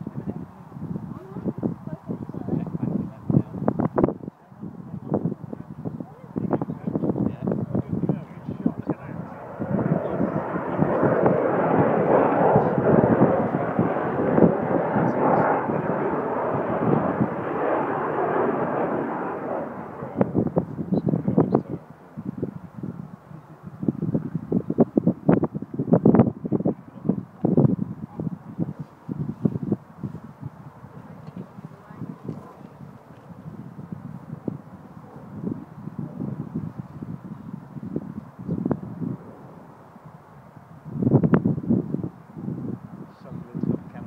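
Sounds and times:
jet aircraft passing low: 0:00.0 - 0:44.0.

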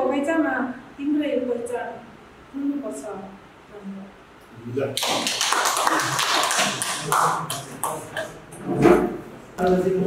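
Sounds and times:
small group applauding: 0:05.0 - 0:08.4.

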